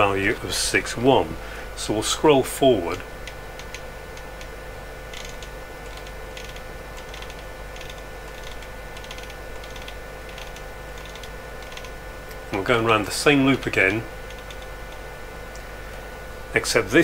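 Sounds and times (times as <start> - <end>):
electrical hum: 0.0 - 17.0
faint constant whine: 0.0 - 17.0.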